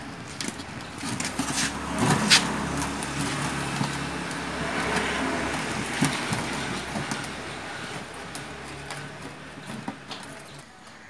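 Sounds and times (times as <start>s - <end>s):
motor vehicle passing: 0.4s - 10.6s.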